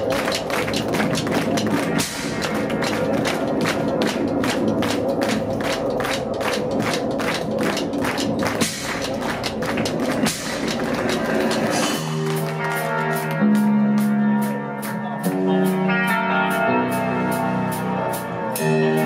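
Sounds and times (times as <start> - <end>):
live heavy metal music: 0.0 - 19.0.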